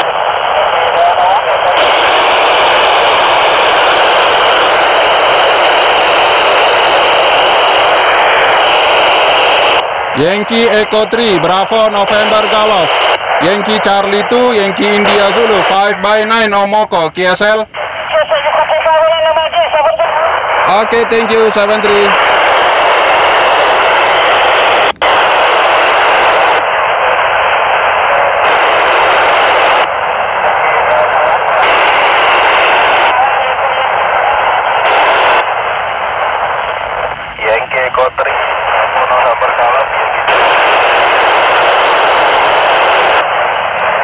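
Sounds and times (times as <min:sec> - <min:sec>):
faint broken radio voices: 0:00.0 - 0:44.0
radio speaker hissing: 0:00.0 - 0:44.0.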